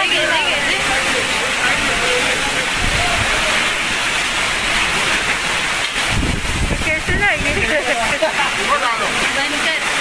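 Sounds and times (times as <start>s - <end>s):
wind and heavy rain rushing: 0.0s - 10.0s
wind buffeting microphone: 5.9s - 7.8s.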